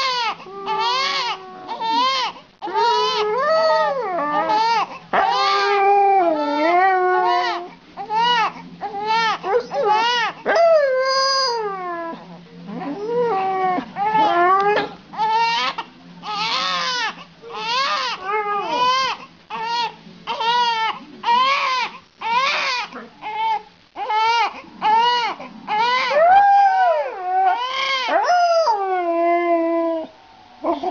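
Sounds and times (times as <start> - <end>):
newborn baby crying: 0.0 - 10.4, 15.2 - 26.2, 27.1 - 28.2
dog howling: 0.0 - 17.0, 24.2 - 30.9.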